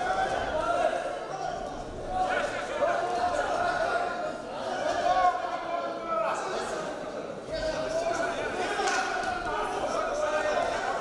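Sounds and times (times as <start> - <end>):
voices shouting in a hall: 0.0 - 11.0.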